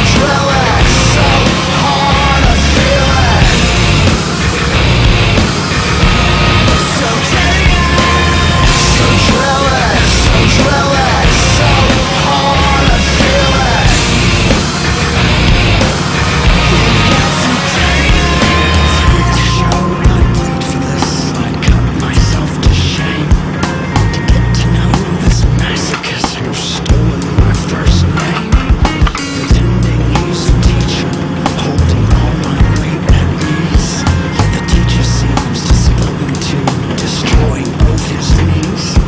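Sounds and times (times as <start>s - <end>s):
loud music with heavy beat: 0.0s - 39.0s.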